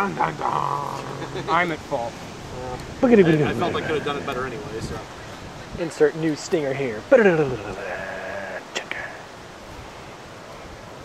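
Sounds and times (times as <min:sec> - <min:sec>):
person laughing: 0:00.0 - 0:01.8
faint outdoor background: 0:00.0 - 0:11.0.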